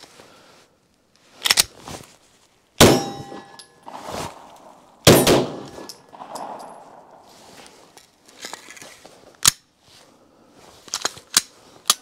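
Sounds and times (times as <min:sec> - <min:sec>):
bullet clanging on steel plate: 0:02.8 - 0:03.9, 0:05.1 - 0:07.0
gunshots: 0:02.8 - 0:07.5.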